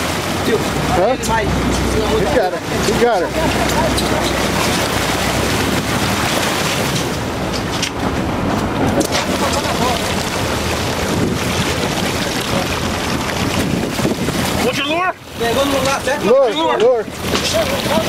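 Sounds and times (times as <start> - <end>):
boat engine running: 0.0 - 18.0
water churning against boat: 0.0 - 18.0
wind buffeting microphone: 2.7 - 16.2.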